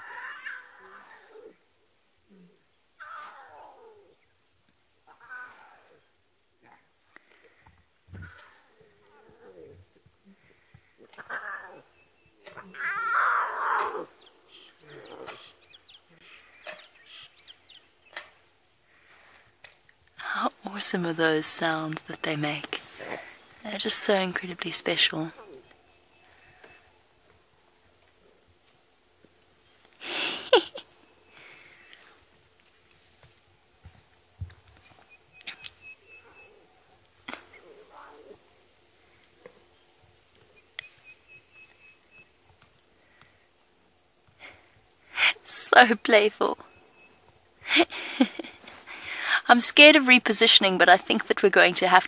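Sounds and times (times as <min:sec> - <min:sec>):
lion cubs calling: 0:00.0 - 0:01.6, 0:02.2 - 0:04.3, 0:05.0 - 0:07.4, 0:08.1 - 0:18.4, 0:24.8 - 0:28.6, 0:35.2 - 0:42.4.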